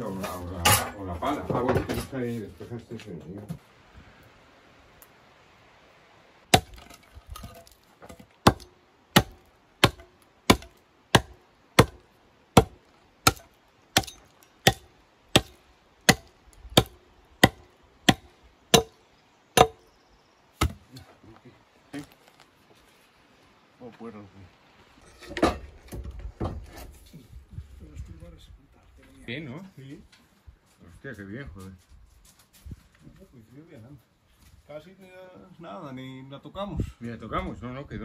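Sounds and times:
axe chopping wooden beam: 0:06.5 - 0:19.0, 0:19.6 - 0:19.8, 0:20.6 - 0:20.9.

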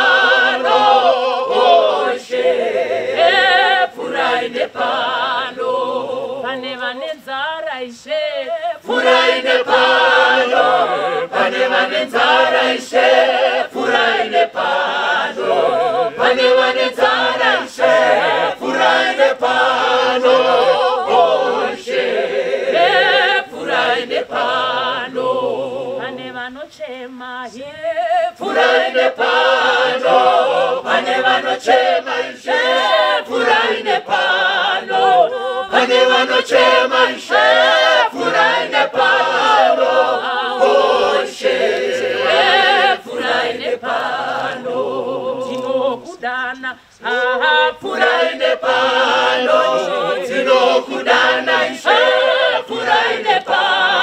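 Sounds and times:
choir singing a hymn in harmony: 0:00.0 - 0:07.0, 0:08.0 - 0:54.0
woman singing lead on microphone: 0:06.3 - 0:09.0, 0:22.8 - 0:29.3, 0:45.4 - 0:48.8.

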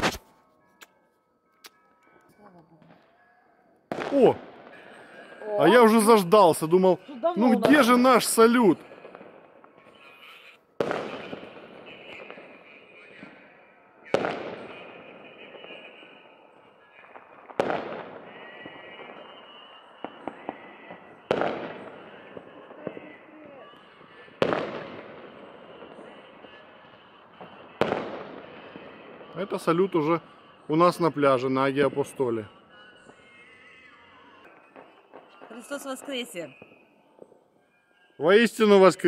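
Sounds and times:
fireworks booming with echo: 0:00.0 - 0:00.3, 0:03.9 - 0:37.7
fireworks crackles: 0:00.0 - 0:01.0, 0:03.8 - 0:39.0.

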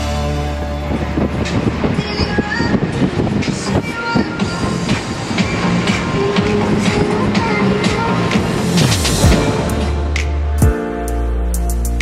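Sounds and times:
boat running at speed: 0:00.0 - 0:09.2
background music: 0:00.0 - 0:12.0.

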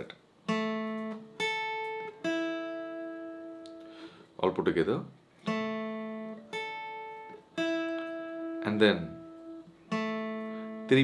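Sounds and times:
acoustic guitar picked notes: 0:00.4 - 0:04.5, 0:05.4 - 0:11.0.

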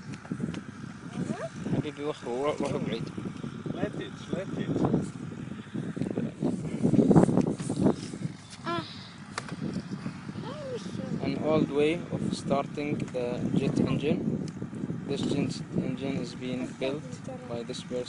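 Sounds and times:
people talking: 0:01.0 - 0:03.1, 0:03.8 - 0:04.9, 0:08.7 - 0:09.0, 0:10.4 - 0:14.2, 0:15.1 - 0:18.0.

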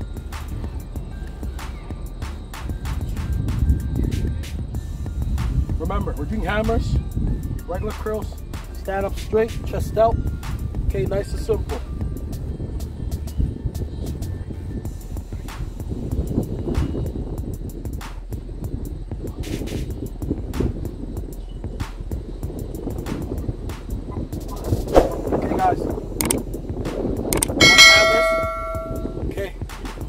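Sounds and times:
soft clicks: 0:26.2 - 0:26.4, 0:27.3 - 0:27.6
bell-like notification chime: 0:27.6 - 0:29.2.

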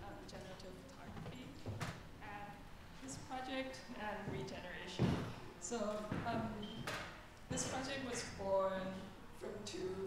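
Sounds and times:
people talking: 0:00.0 - 0:01.6, 0:02.2 - 0:06.8, 0:07.5 - 0:10.0.

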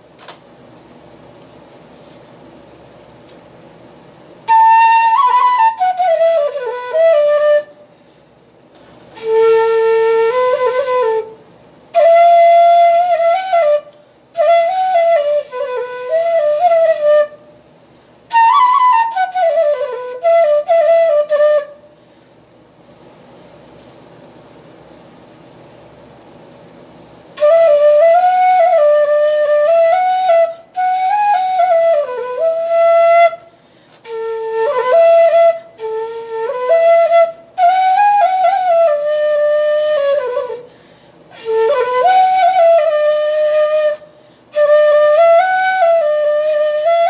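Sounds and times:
bamboo flute melody: 0:04.4 - 0:07.8, 0:09.1 - 0:17.5, 0:18.3 - 0:21.8, 0:27.3 - 0:40.7, 0:41.3 - 0:47.0
flute player breathing: 0:21.8 - 0:22.4, 0:33.4 - 0:34.1, 0:40.6 - 0:41.4, 0:44.0 - 0:44.6.

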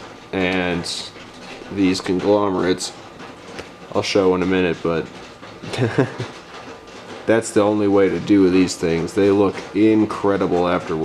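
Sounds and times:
man chuckling: 0:05.6 - 0:06.4.

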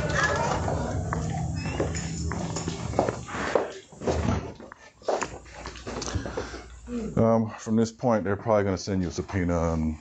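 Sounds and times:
footsteps on hard floor: 0:00.0 - 0:06.6
steady low hum: 0:00.0 - 0:10.0.

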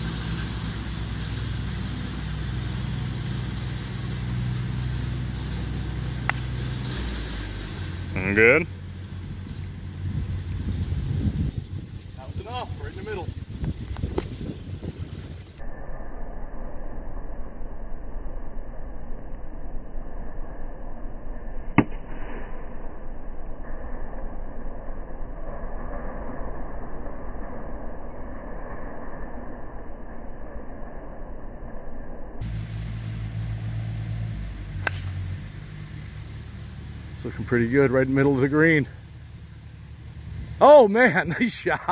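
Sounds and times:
slowed low rushing noise: 0:00.0 - 0:41.9
wind rumble: 0:00.0 - 0:41.9
golf club striking ball: 0:06.1 - 0:07.3, 0:34.4 - 0:35.4
sharp click: 0:34.8 - 0:35.2.

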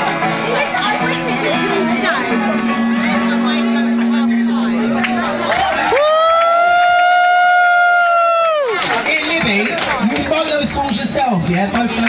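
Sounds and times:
person cheering woo: 0:05.6 - 0:08.8.

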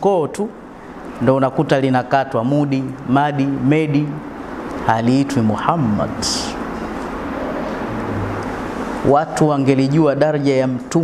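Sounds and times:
faint low hum: 0:00.0 - 0:11.0
rushing background noise: 0:00.6 - 0:11.0.

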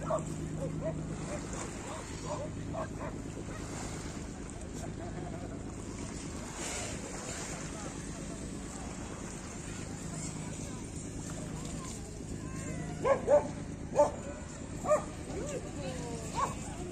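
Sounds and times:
gentle sea waves: 0:00.0 - 0:16.9
steady low hum: 0:00.0 - 0:16.9.

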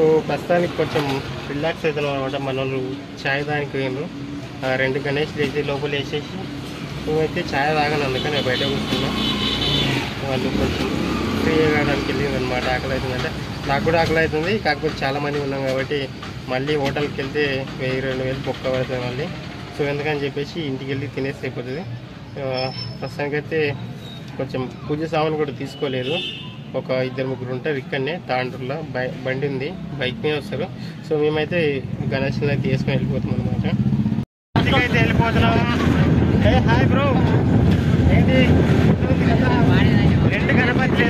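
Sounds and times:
man talking: 0:00.0 - 0:23.8, 0:24.4 - 0:33.8, 0:34.6 - 0:41.0
several voices: 0:34.6 - 0:41.0
wind noise: 0:34.6 - 0:41.0.

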